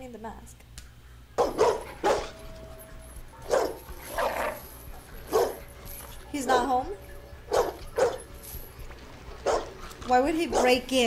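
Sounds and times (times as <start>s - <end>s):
dog barking: 1.4s - 2.4s, 3.4s - 4.4s, 5.3s - 5.7s, 6.5s - 6.8s, 7.5s - 8.3s, 9.4s - 9.8s, 10.5s - 10.8s.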